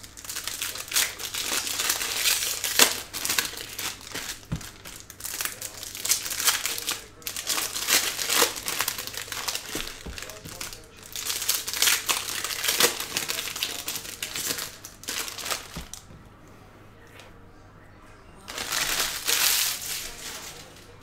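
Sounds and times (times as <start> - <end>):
foil wrappers crinkling: 0.0 - 16.2, 18.4 - 21.0
packs torn open by hand: 0.1 - 16.0, 18.5 - 20.7.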